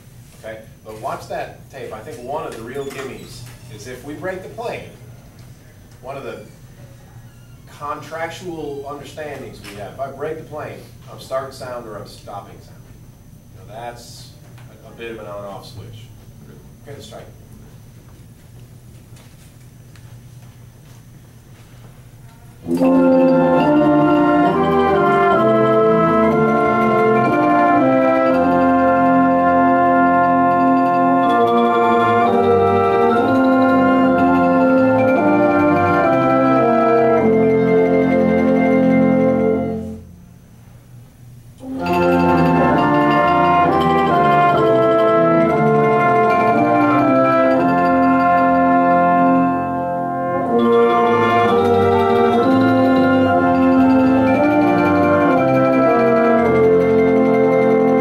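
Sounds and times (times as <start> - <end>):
instrumental ensemble playing chords: 22.6 - 40.4, 41.6 - 58.0.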